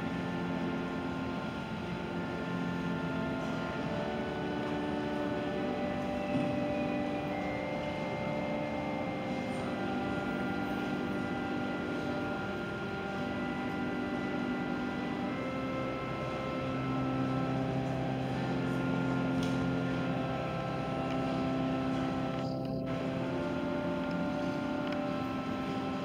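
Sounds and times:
organ playing sustained chords: 0:00.0 - 0:26.0.

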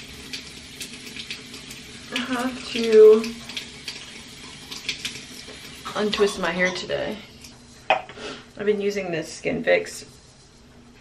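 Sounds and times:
water running from sink tap: 0:00.0 - 0:10.4.

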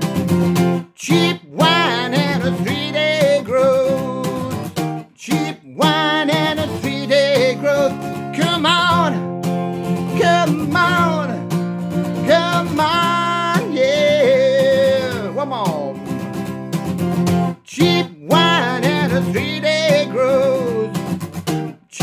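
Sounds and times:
strummed acoustic guitar: 0:00.0 - 0:22.0.

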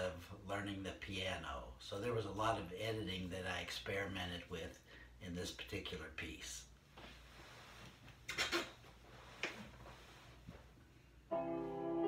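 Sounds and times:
faint knocks and rustles: 0:06.9 - 0:10.9
electronic keyboard chord: 0:11.3 - 0:12.0.

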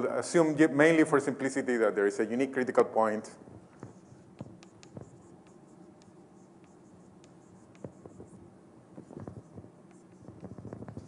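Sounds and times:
writing taps and scratches on board: 0:03.7 - 0:08.4, 0:09.0 - 0:11.0.

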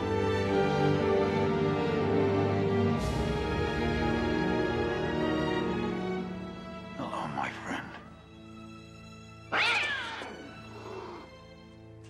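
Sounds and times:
orchestral film score: 0:00.0 - 0:12.0
cat yowling angrily: 0:09.5 - 0:11.3.

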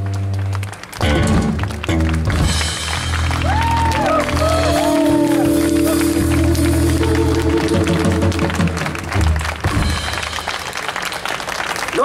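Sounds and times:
audience applause: 0:00.0 - 0:12.0
jazz quartet playing: 0:04.2 - 0:09.3.

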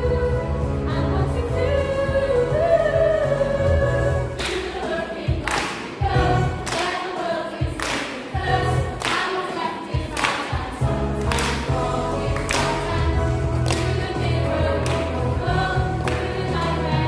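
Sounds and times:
group singing in unison: 0:00.0 - 0:17.0.

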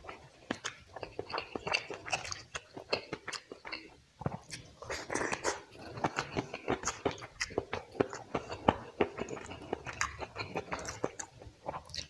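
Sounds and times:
wet chewing and lip smacks: 0:00.0 - 0:12.0.

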